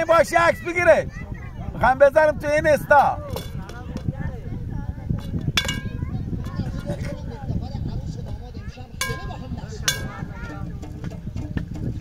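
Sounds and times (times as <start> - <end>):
sharp metallic clink: 5.6 - 6.0, 9.0 - 10.2.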